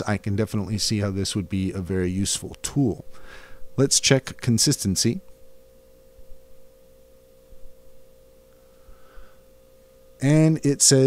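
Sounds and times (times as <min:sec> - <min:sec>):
faint electrical whine: 0:00.0 - 0:11.0
low background noise: 0:00.0 - 0:11.0.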